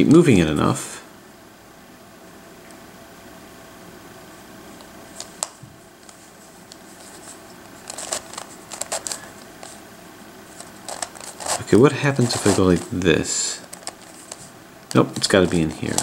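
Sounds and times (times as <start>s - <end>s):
steady low hiss: 0.0s - 16.0s.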